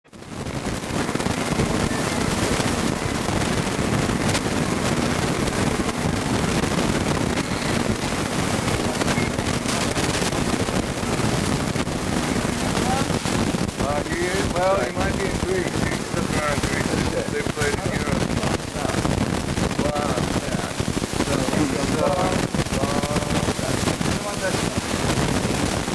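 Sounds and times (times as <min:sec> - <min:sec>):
crackles: 0:00.0 - 0:25.9
indistinct talking: 0:01.2 - 0:25.2
background crowd hubbub: 0:03.8 - 0:25.4.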